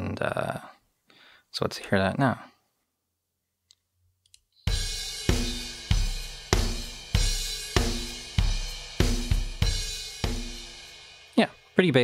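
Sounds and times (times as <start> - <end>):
drum kit groove: 4.6 - 12.0.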